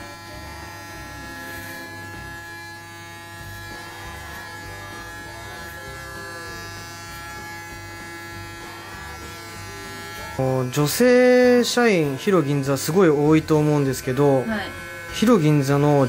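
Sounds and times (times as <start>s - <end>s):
steady multi-tone buzz: 0.0s - 13.8s.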